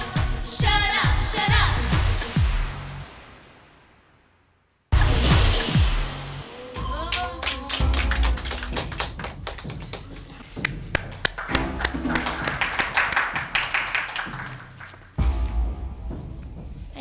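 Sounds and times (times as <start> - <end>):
background music: 0.0 - 3.8, 4.9 - 17.0
people clapping: 7.0 - 15.2.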